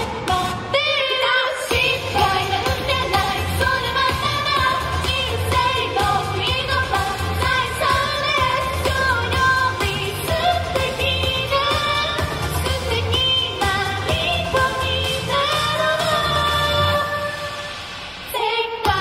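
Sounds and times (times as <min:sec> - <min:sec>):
female vocals singing: 0:00.0 - 0:17.7, 0:18.3 - 0:19.0
upbeat pop music: 0:00.0 - 0:19.0.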